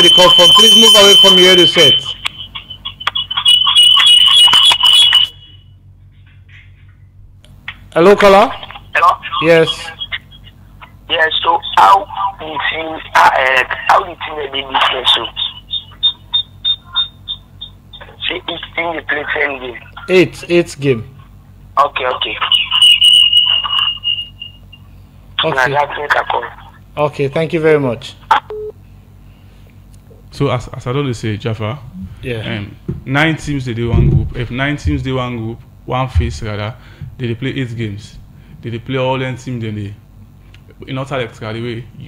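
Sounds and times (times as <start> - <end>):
high-pitched feedback whistle: 0.0 - 5.8, 15.1 - 18.1, 22.5 - 25.0
crackly broken-up phone sound: 3.0 - 5.4.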